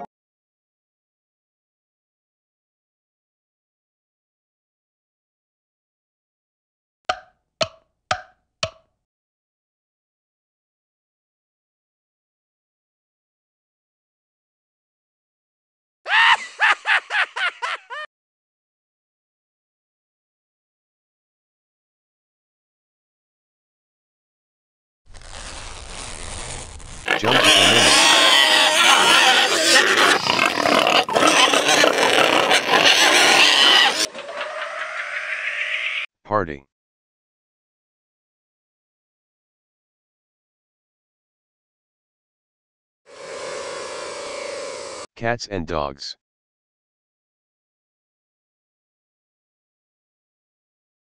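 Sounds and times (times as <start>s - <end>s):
pigs squealing and grunting: 27.1s - 36.0s.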